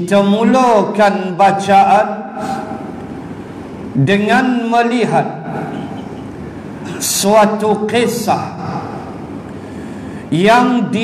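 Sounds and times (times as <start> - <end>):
man speaking: 0.0 - 2.7, 4.0 - 5.8, 6.9 - 8.9, 10.3 - 11.0
steady background noise: 0.0 - 11.0.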